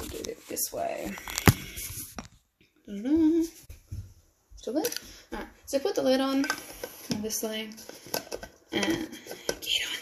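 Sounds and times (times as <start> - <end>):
woman humming: 2.9 - 3.6.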